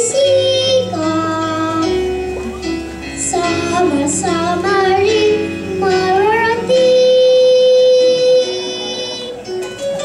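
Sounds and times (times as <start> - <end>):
musical accompaniment: 0.0 - 10.0
children singing: 3.2 - 9.4.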